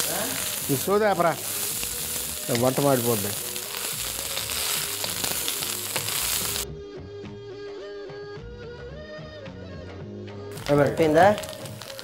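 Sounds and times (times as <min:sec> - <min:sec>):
vegetables sizzling in a pan: 0:00.0 - 0:06.6, 0:10.5 - 0:12.0
quiet background music: 0:00.0 - 0:12.0.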